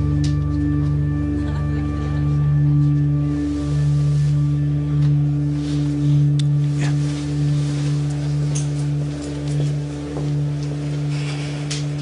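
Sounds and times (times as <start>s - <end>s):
low synthesiser drone: 0.0s - 12.0s.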